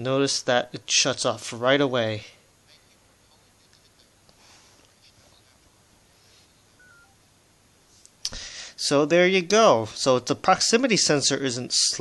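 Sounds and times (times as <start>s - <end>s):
faint electronic phone beeps: 6.8s - 7.2s.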